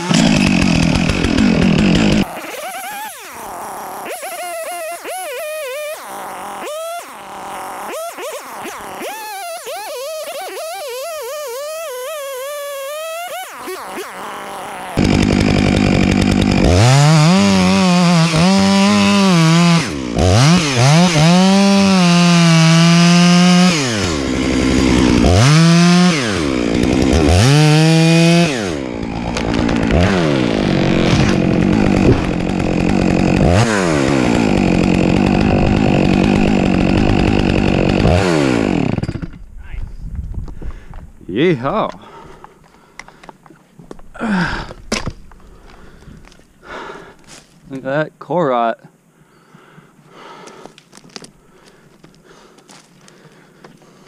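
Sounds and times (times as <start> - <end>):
chainsaw cutting wood: 0.0 - 39.6, 41.8 - 47.7, 50.2 - 54.0.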